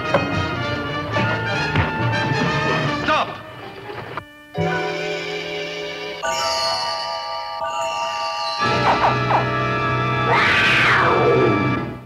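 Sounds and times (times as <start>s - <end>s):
held music chord: 4.2s - 10.3s.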